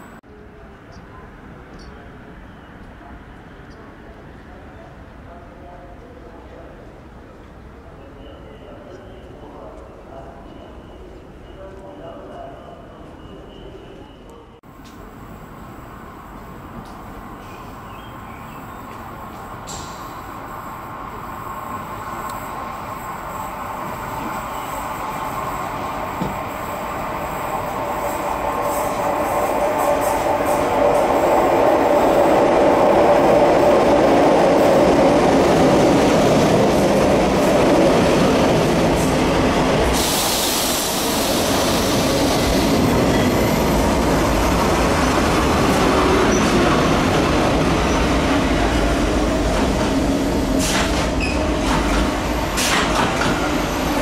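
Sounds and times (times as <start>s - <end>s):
train wheels squealing: 8.2s - 14.5s, 50.6s - 54.0s
hiss: 19.6s - 21.4s, 39.8s - 42.6s.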